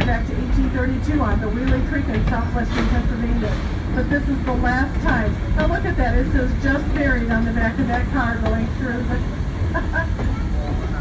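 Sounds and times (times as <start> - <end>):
faint voices: 0.0 - 11.0
train rumbling: 0.0 - 11.0.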